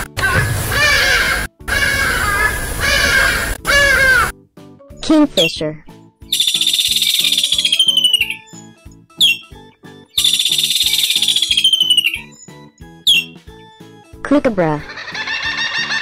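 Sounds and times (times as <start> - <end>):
background music with steady beat: 5.9 - 16.0
kingfisher trilling calls: 6.3 - 9.6, 10.2 - 12.4, 13.1 - 13.4.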